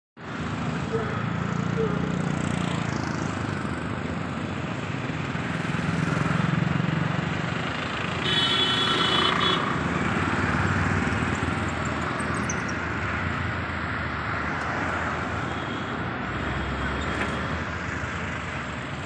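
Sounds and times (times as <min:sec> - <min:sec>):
road traffic noise: 0:00.2 - 0:19.0
vehicle horn: 0:08.2 - 0:09.8.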